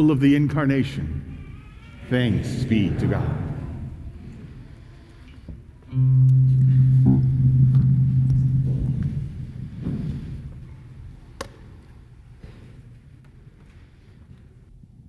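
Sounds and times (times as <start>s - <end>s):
low sustained instrument note: 5.9s - 10.9s.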